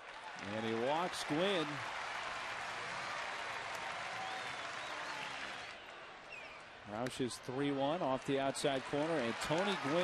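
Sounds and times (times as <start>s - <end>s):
crowd applauding and cheering: 0.0s - 6.2s, 8.2s - 10.0s.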